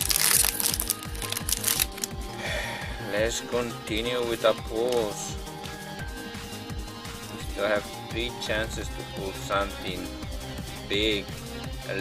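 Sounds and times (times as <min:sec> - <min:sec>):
foil wrapper crinkling and tearing: 0:00.0 - 0:02.2
background music with steady beat: 0:00.0 - 0:12.0.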